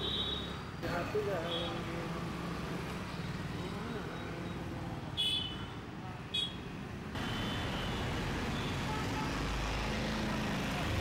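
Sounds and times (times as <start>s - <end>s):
low rumble of road traffic: 0.0s - 11.0s.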